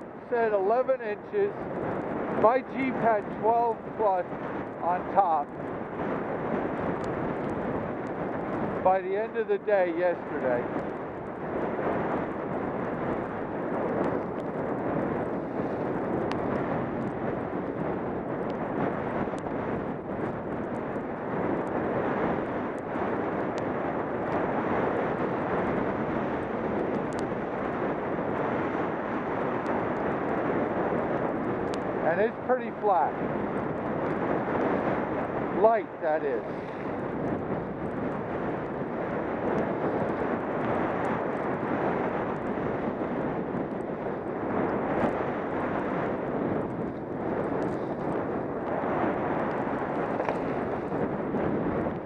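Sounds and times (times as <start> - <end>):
wind on microphone: 0.0 - 52.0
skis sliding over snow: 50.0 - 50.9.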